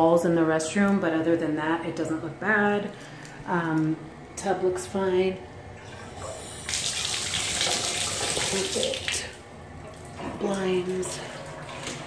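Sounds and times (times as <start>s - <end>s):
water running into bathtub: 5.7s - 12.0s.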